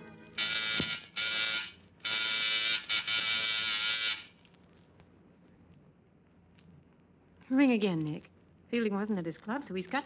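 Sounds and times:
electric doorbell buzzer: 0:00.3 - 0:04.3.

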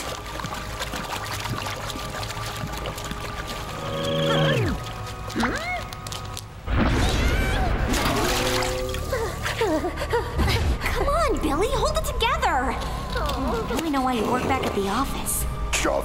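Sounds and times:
cartoon background music: 0:00.0 - 0:16.0.

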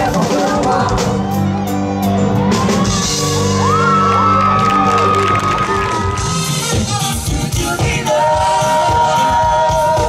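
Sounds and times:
dance band keyboard chords: 0:00.0 - 0:10.0.

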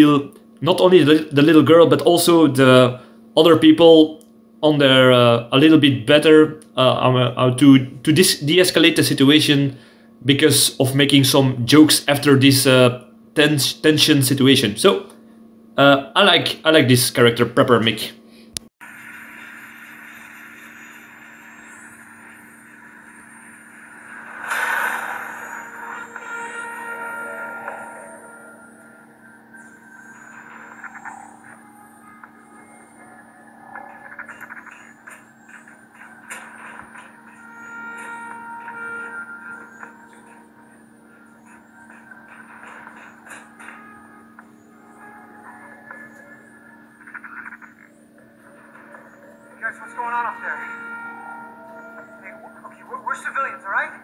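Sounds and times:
low hum: 0:18.8 - 0:53.0
film soundtrack through laptop speakers: 0:18.8 - 0:54.0.

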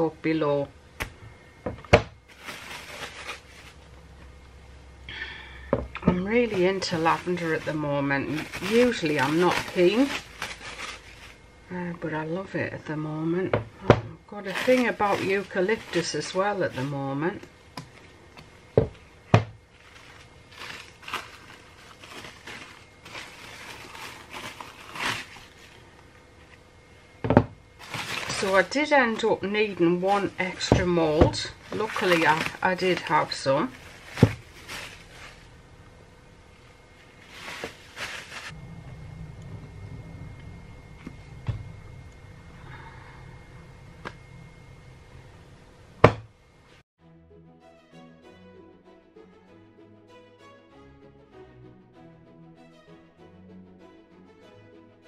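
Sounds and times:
cling film crinkling: 0:02.2 - 0:03.9, 0:06.4 - 0:11.5, 0:14.4 - 0:17.0, 0:19.7 - 0:25.9, 0:27.8 - 0:30.7, 0:31.4 - 0:35.5, 0:37.0 - 0:38.6.

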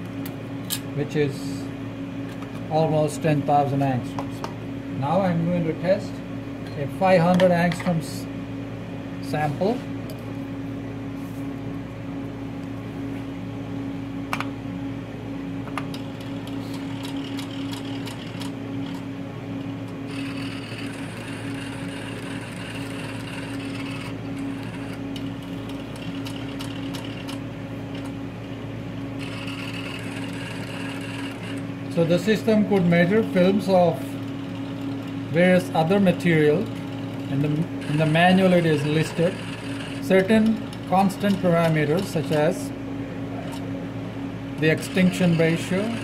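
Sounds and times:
steady mechanical hum: 0:00.0 - 0:46.0
high motor whir: 0:15.9 - 0:28.1, 0:29.1 - 0:42.5, 0:44.6 - 0:46.0.

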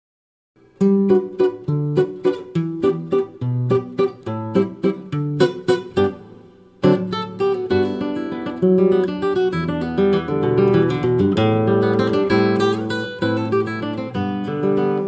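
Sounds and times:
fingerstyle classical guitar: 0:00.6 - 0:15.0.

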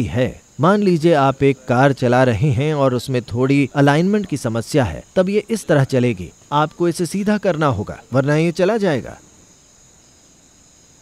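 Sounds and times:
crickets chirring: 0:00.0 - 0:11.0.

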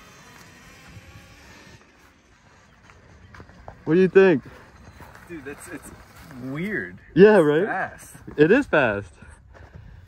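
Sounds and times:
electric dirt bike motor whine: 0:00.0 - 0:03.5.

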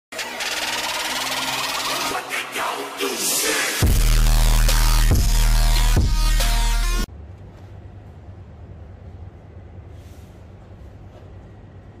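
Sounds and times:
electronic music: 0:00.1 - 0:07.1
buzzing electronic drone: 0:03.8 - 0:07.1.

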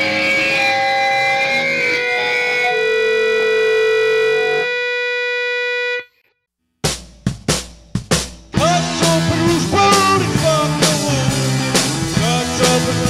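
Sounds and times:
distorted electric guitar chord: 0:00.0 - 0:06.2, 0:08.5 - 0:13.0.

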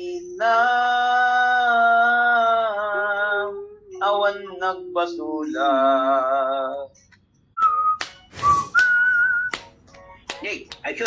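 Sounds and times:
person whistling a tune: 0:07.6 - 0:09.7.

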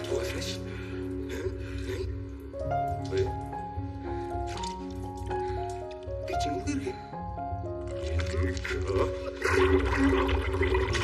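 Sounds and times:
background music: 0:00.0 - 0:11.0
water splashing in bowl: 0:07.9 - 0:11.0
toilet flushing: 0:09.4 - 0:11.0.

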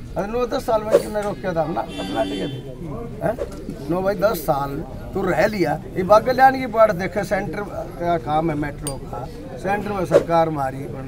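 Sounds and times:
man speaking into microphones: 0:00.0 - 0:11.0.

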